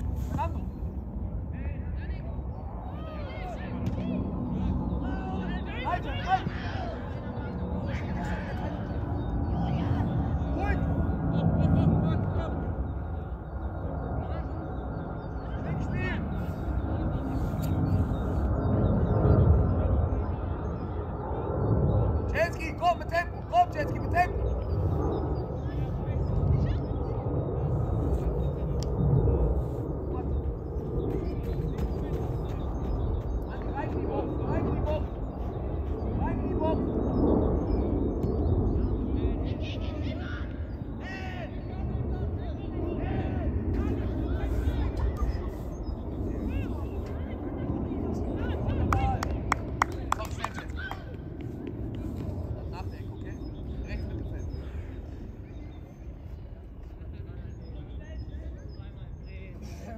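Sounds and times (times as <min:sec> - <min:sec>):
steady low rumble: 0:00.0 - 0:59.9
distant shouts of players and spectators: 0:01.5 - 0:19.0, 0:38.3 - 0:59.9.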